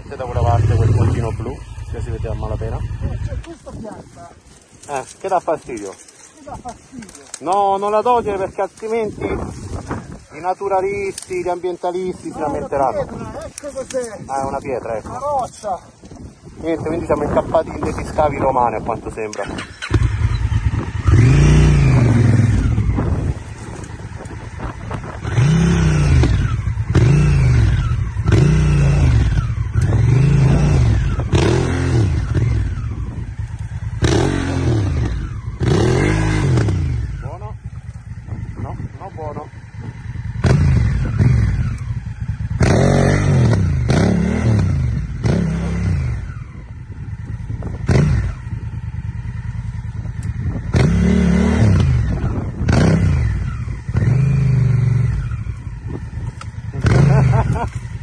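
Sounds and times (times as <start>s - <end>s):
motorcycle engine revving in blips: 0.0s - 3.6s, 19.3s - 58.0s.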